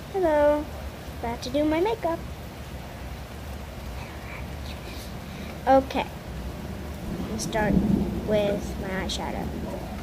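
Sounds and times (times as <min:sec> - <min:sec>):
steady rain falling: 0:00.0 - 0:10.0
low hum: 0:03.9 - 0:10.0.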